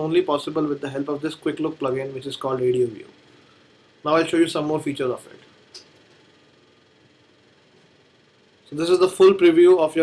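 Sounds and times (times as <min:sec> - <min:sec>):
faint steady background hiss: 0:00.0 - 0:10.0.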